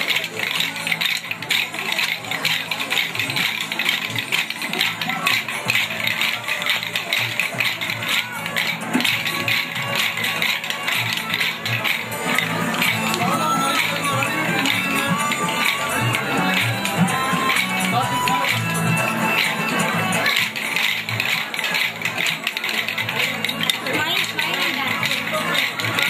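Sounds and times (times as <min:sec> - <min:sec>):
music: 0:00.0 - 0:26.0
wooden sticks clicking: 0:00.0 - 0:26.0.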